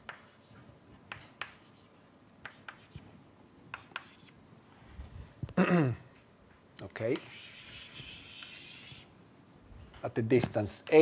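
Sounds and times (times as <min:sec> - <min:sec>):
chalk writing on blackboard: 0:00.0 - 0:03.1, 0:03.7 - 0:04.4, 0:07.1 - 0:09.1.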